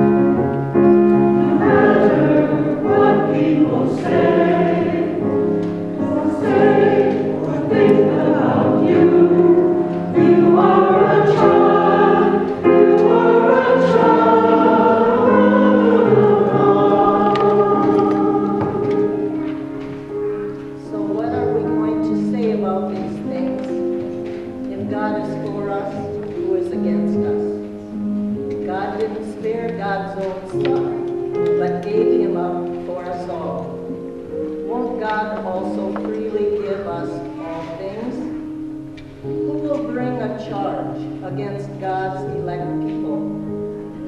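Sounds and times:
choir singing: 1.2s - 19.8s.

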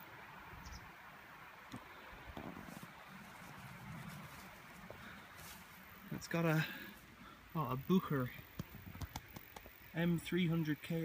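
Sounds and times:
faint steady hiss: 0.0s - 11.0s
rustles: 0.3s - 10.1s.

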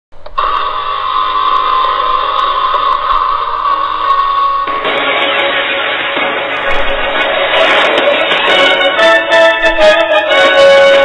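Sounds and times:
music: 0.2s - 11.0s
steady high-pitched tone: 0.2s - 11.0s
hiss: 0.4s - 6.5s.

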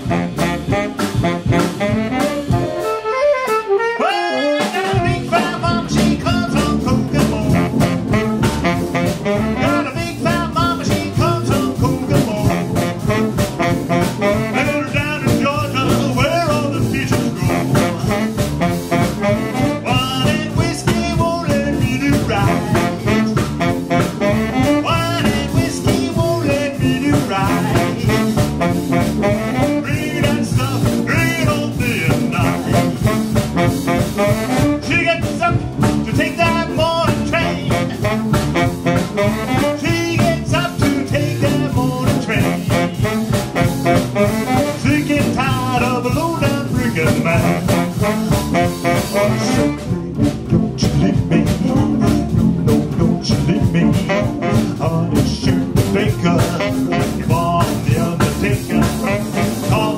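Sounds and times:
live jump-blues band playing: 0.0s - 59.9s.

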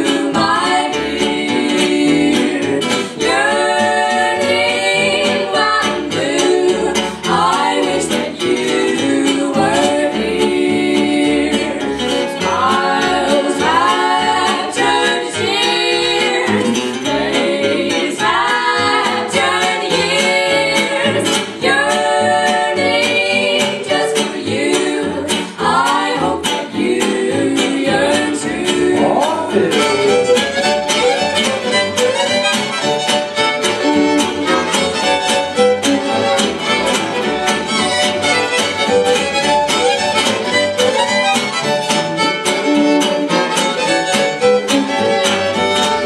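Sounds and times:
women singing in harmony: 0.0s - 32.4s
acoustic rhythm guitar: 0.0s - 46.0s
plucked upright bass: 0.0s - 46.0s
band accompaniment: 11.2s - 46.0s.

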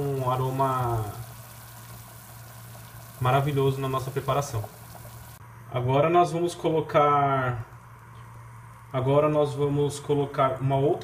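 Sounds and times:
broth bubbling in pot: 0.0s - 5.4s, 7.4s - 10.3s.

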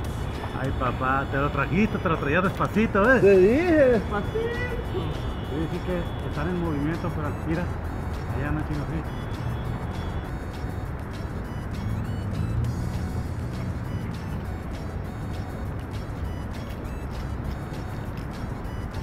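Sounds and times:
faint background music: 0.0s - 19.0s
road traffic rumble: 0.0s - 19.0s.

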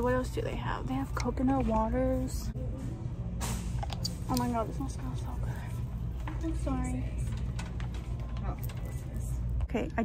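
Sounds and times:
low rumble of shop: 0.0s - 10.0s.

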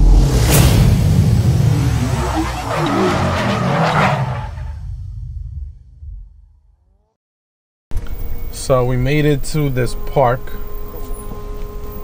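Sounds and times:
low rumble with whooshing: 0.0s - 6.9s.

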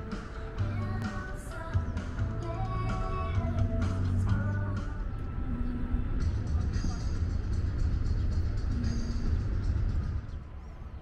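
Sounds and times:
faint music: 0.0s - 11.0s
steady low rumble: 0.0s - 11.0s.

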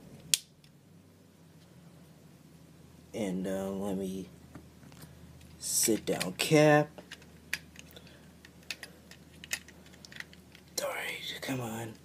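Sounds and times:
faint steady hum: 0.0s - 12.0s
plastic toy bricks clicking: 7.1s - 10.8s.

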